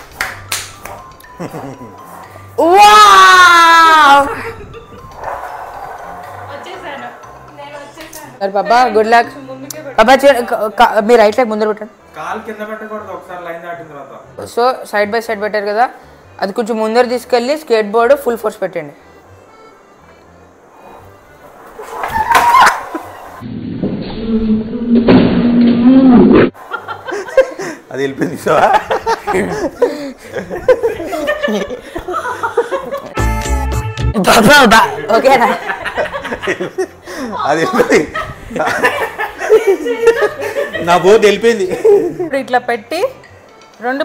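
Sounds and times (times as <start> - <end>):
faint background music: 0.0 - 23.5, 26.5 - 44.0
people laughing: 1.3 - 2.0, 26.6 - 33.2, 34.6 - 42.3
man crying out: 2.6 - 4.4
people talking: 6.5 - 10.6.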